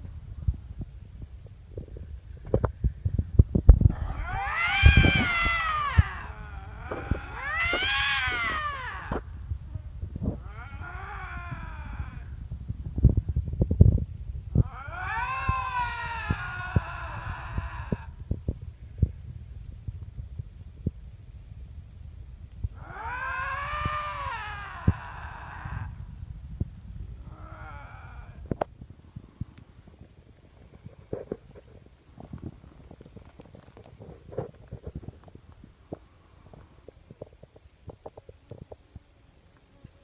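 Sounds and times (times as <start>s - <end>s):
lynx yowling: 3.9s - 9.2s, 10.4s - 12.4s, 14.6s - 18.2s, 22.8s - 26.0s, 27.2s - 28.5s.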